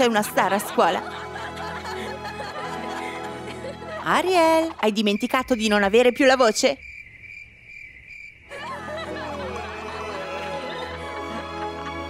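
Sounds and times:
background music: 0:00.0 - 0:04.9, 0:08.5 - 0:12.0
cricket chirping: 0:04.7 - 0:08.6.

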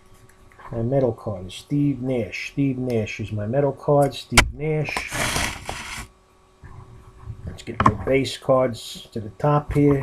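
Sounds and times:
rustling of cards and wrapping: 0:05.0 - 0:06.1.

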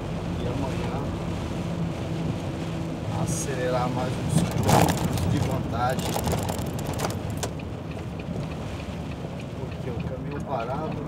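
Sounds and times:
vehicle engine and road noise: 0:00.0 - 0:11.0
sharp clicks: 0:06.0 - 0:11.0.

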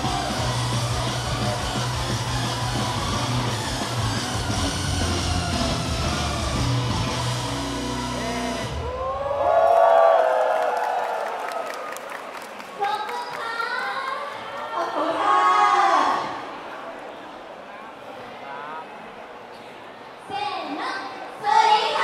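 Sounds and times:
crowd cheering: 0:00.0 - 0:17.1.

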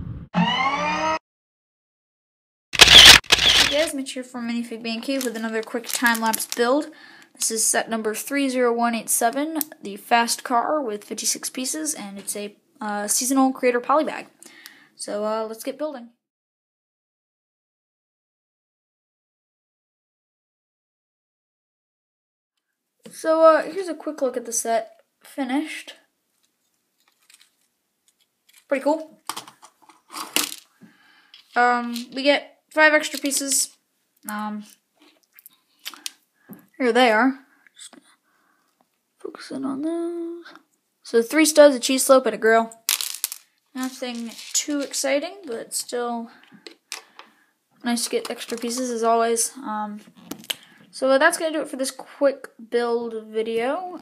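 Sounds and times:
whoosh: 0:00.0 - 0:00.3
short electronic tone: 0:00.0 - 0:01.2, 0:02.8 - 0:03.9.

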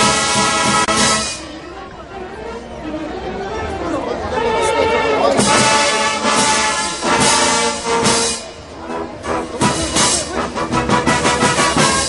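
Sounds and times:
brass band playing: 0:00.0 - 0:12.0
crowd chatter: 0:00.0 - 0:12.0.

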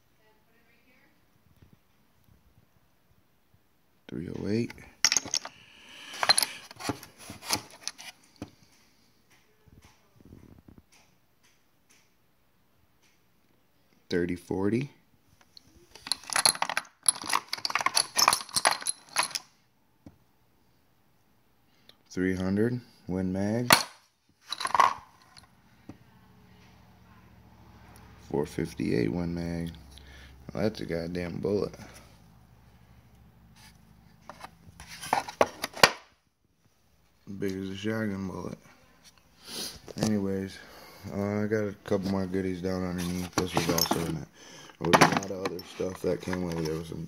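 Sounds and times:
brass cartridges clinking: 0:05.0 - 0:06.9, 0:15.5 - 0:19.5, 0:23.7 - 0:25.5, 0:44.8 - 0:46.9
cartridges clicking in wooden box: 0:16.0 - 0:19.5.

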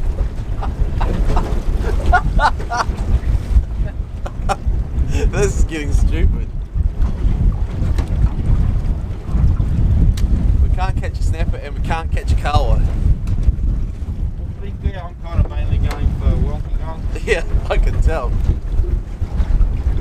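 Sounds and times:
choppy sea: 0:00.0 - 0:20.0
wind buffeting microphone: 0:00.0 - 0:20.0.

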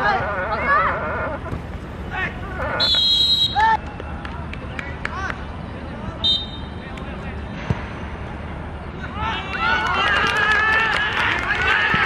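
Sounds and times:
young voices shouting: 0:00.0 - 0:01.4.

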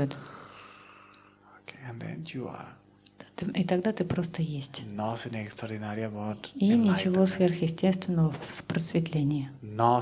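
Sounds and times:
faint hum: 0:00.0 - 0:10.0
man speaking: 0:01.6 - 0:02.8, 0:04.8 - 0:07.1, 0:09.6 - 0:10.0.

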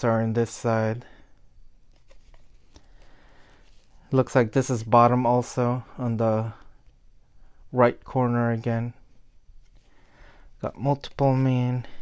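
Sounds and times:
cardboard cards rustling and clicking: 0:01.9 - 0:04.0.

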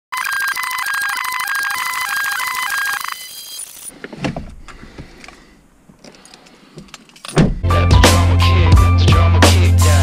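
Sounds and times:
electronic alarm beeping melody: 0:00.2 - 0:03.9.

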